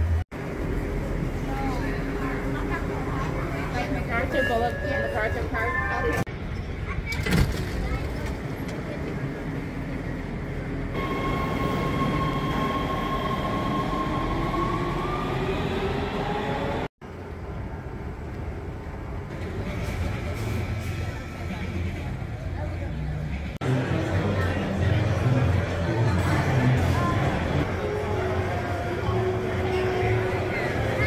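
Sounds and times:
subway train wheel and rail rumble: 0.0s - 31.0s.

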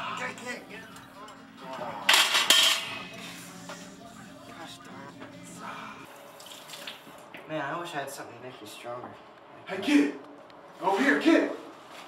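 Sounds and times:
steady low hum: 0.0s - 6.4s
water running from sink tap: 6.4s - 7.2s.

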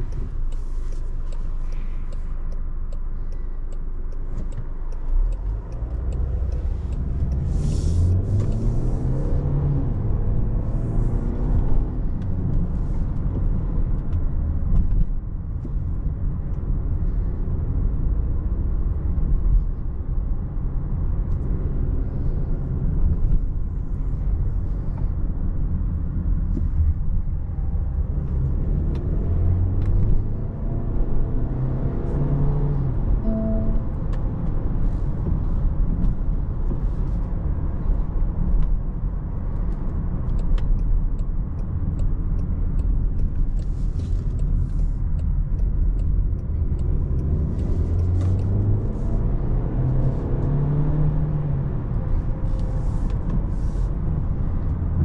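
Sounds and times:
car engine: 0.0s - 55.0s.

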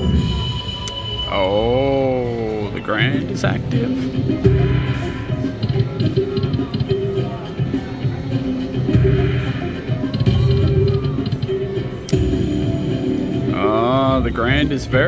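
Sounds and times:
slot machine bonus music: 0.0s - 15.0s
slot machine spin effects: 0.0s - 15.0s.

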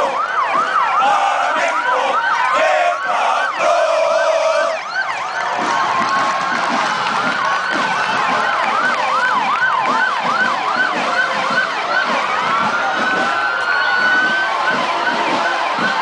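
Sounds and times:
sirens yelping: 0.0s - 16.0s.

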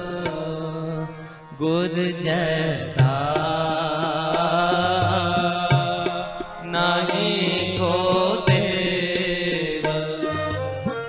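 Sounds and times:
harmoniums playing melody: 0.0s - 11.0s.

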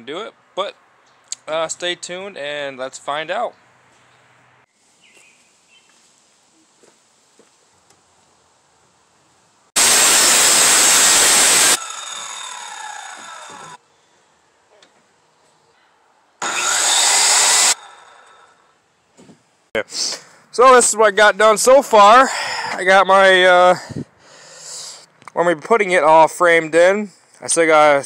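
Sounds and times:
power saw cutting wood: 9.8s - 13.8s, 16.4s - 18.6s
saw blade winding down whine: 9.8s - 13.8s, 16.4s - 18.6s.

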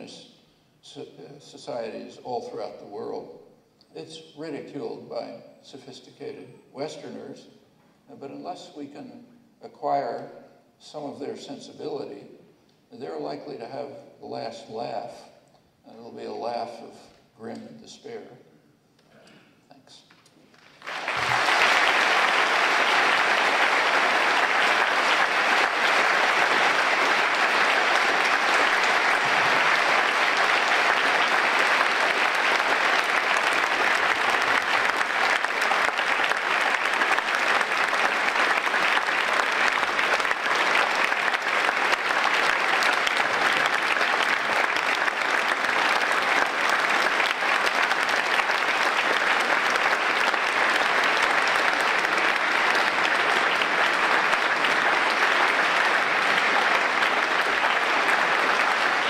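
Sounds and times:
large audience applauding: 20.4s - 59.0s.

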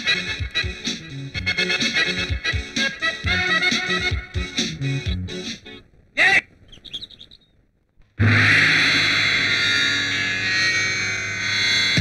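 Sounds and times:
song beat: 0.0s - 5.7s
faint chirps: 6.6s - 7.7s
distorted electric guitar chord: 8.2s - 12.0s.

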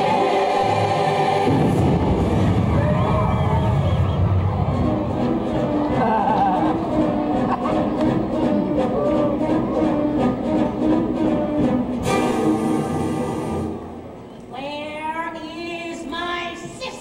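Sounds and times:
loud rushing noise: 0.0s - 5.9s
dramatic orchestral music: 0.0s - 14.1s.

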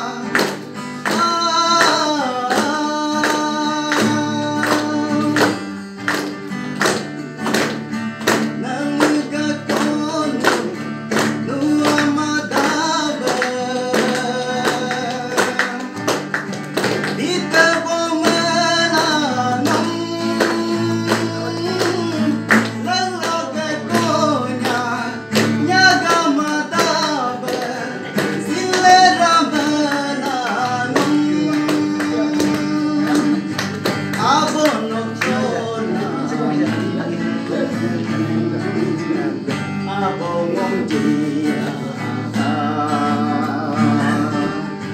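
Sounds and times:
man singing: 0.0s - 6.1s, 8.2s - 44.9s
acoustic guitar strumming: 0.0s - 44.9s.

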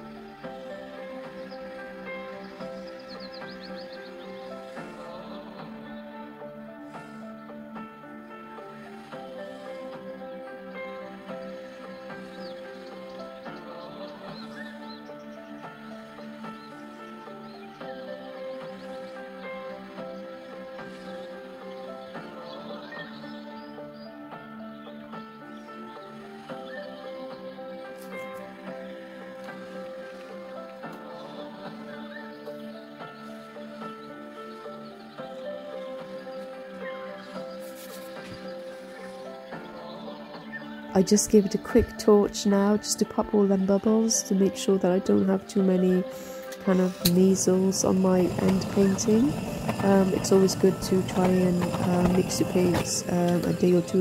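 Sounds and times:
slow sustained music chords: 0.0s - 54.0s.

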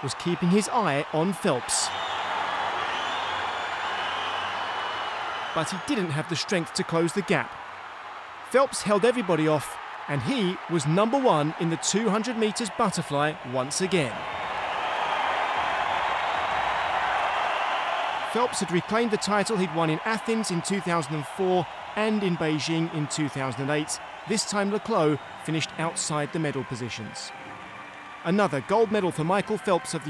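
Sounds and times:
crowd cheering and applauding: 0.0s - 30.0s.

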